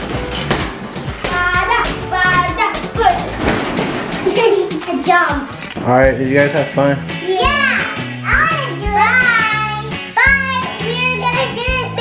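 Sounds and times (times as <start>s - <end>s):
play balls knocking: 0.0s - 5.1s
background music: 0.0s - 12.0s
children calling out: 7.2s - 12.0s.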